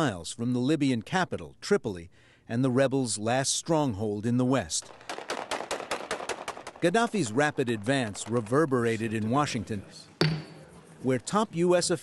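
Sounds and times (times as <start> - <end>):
automatic gunfire: 4.8 - 7.4.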